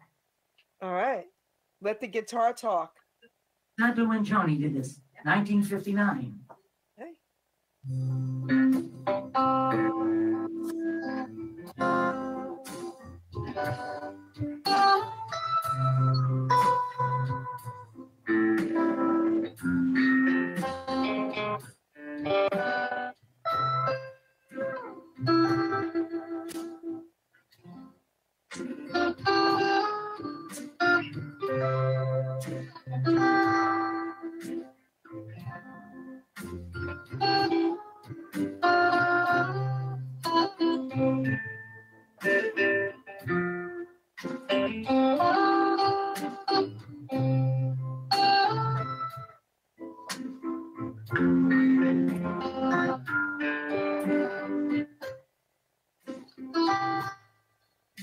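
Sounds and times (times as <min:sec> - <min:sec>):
sustained bass: 0:07.8 - 0:11.0
electric guitar melody: 0:07.8 - 0:55.2, 0:56.0 - 0:57.2.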